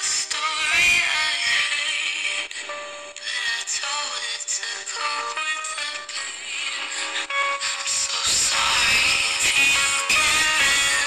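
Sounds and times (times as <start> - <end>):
music with singing from radio: 0.0 - 11.0.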